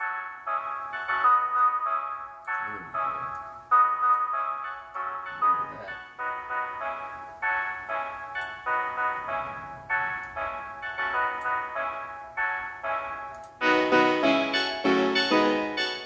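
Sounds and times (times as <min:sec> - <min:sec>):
beat with keyboard melody: 0:00.0 - 0:16.0.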